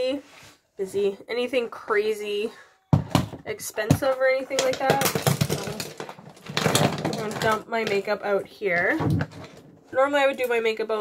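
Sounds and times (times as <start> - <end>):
plastic makeup items rattling: 3.0 - 9.8.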